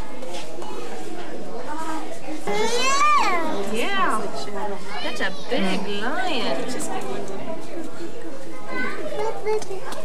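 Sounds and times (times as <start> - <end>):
chatter of children and adults: 0.0 - 10.0.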